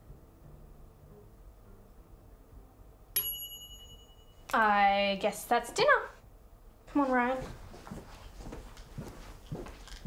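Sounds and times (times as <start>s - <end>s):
kitchen timer bell ding: 3.2s - 4.6s.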